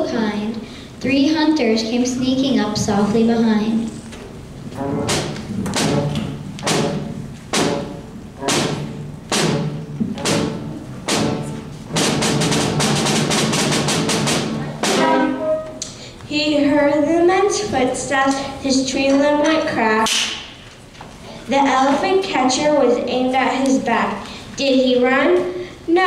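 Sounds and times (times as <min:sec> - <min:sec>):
brass and percussion band playing: 0:04.7 - 0:15.9.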